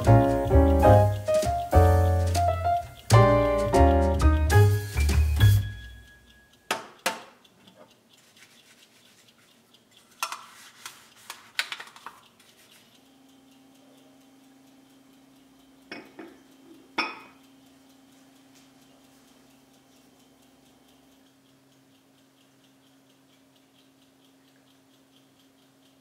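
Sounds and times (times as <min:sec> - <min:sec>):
music: 0:00.0 - 0:06.2
dish brush scrubbing dishes: 0:10.0 - 0:12.2
faint steady hum: 0:12.2 - 0:26.0
glass cup clinking on saucer: 0:17.0 - 0:17.4.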